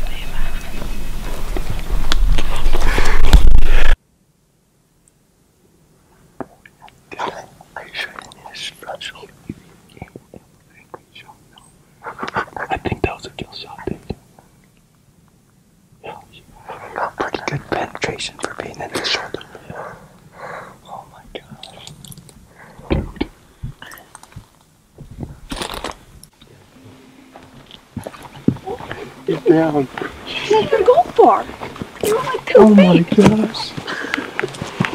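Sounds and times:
hushed whispering: 0:00.0 - 0:01.3, 0:06.7 - 0:14.4, 0:16.0 - 0:24.2, 0:28.1 - 0:32.6
rustling on dry forest floor: 0:26.7 - 0:34.9.

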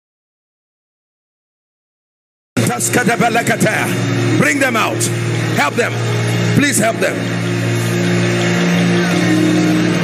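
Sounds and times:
sustained keyboard pad chord: 0:02.6 - 0:10.0.

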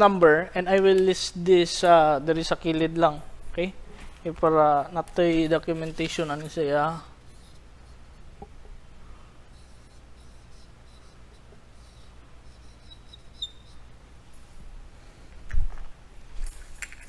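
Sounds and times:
low steady hum: 0:00.0 - 0:17.0
marker squeak: 0:09.5 - 0:13.9.

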